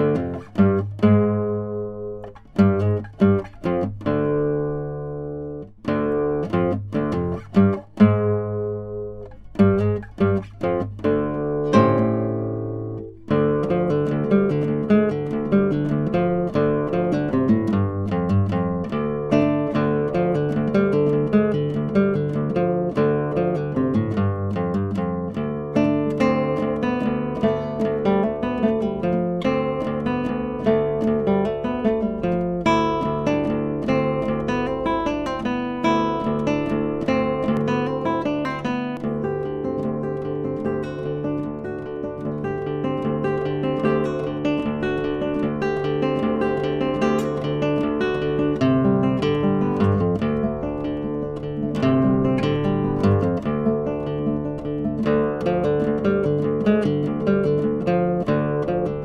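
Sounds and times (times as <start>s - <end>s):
fingerstyle classical guitar: 0.0s - 59.0s.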